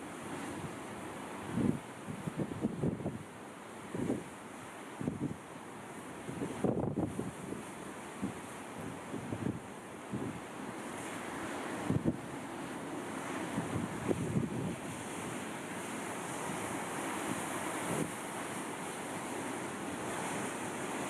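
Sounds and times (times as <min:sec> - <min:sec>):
rough sea and surf: 0:00.0 - 0:21.0
wind buffeting microphone: 0:01.5 - 0:03.2, 0:06.3 - 0:07.6, 0:13.5 - 0:15.2.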